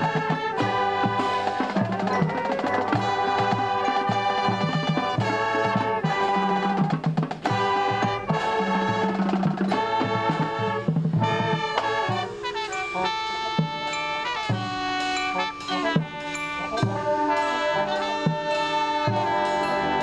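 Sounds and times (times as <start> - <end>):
brass chords: 0.0 - 20.0
drums and percussion: 0.0 - 20.0.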